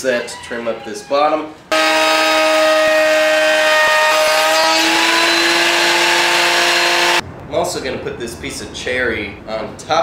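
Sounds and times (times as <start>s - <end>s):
router cutting wood: 1.7s - 7.2s
router table motor whine: 1.7s - 7.2s.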